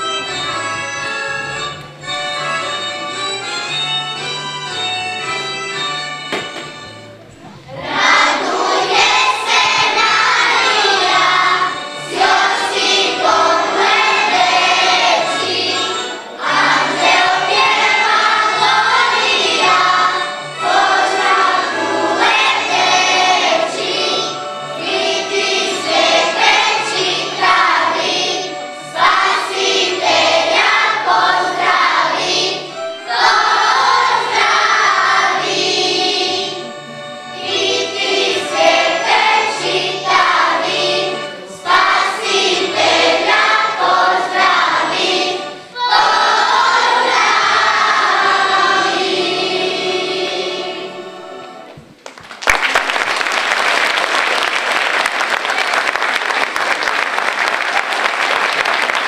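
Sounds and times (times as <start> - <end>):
children's choir singing: 0.0 - 52.0
instrumental accompaniment: 0.0 - 59.0.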